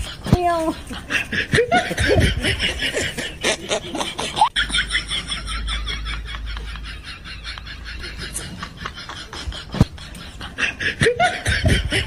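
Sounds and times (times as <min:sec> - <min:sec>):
rhythmic snickering laughter: 0:00.0 - 0:12.0.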